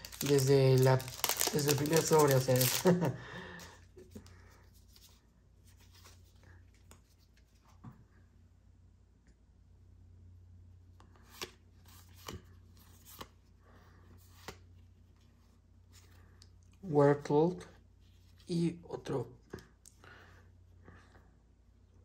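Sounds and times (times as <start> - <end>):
cards sliding and rustling: 11.0 - 13.4, 14.1 - 16.2.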